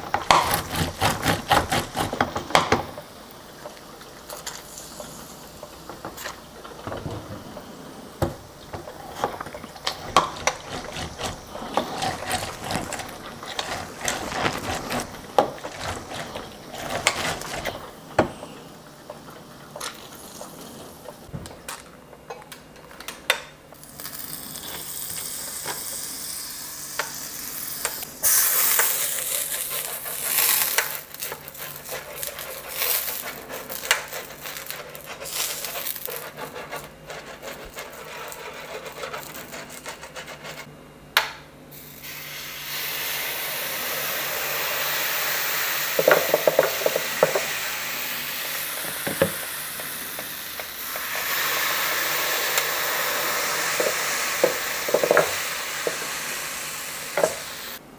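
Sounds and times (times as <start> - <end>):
orange squishing on juicer: 8.8 - 18.3, 28.0 - 40.2.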